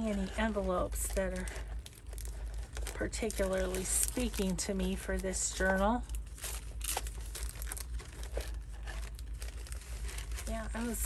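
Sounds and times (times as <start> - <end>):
paper envelopes rustling: 0.0 - 11.0.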